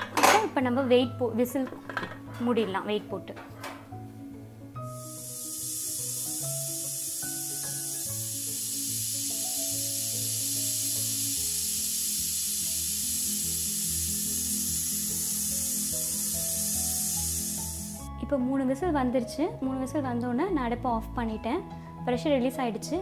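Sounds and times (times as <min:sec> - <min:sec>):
background music: 0:00.0 - 0:23.0
pressure cooker whistle hissing: 0:04.8 - 0:18.1.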